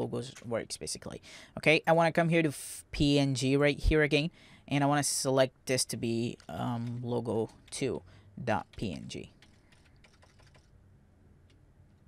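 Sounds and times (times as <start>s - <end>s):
keyboard typing: 6.3s - 7.9s, 8.5s - 10.8s.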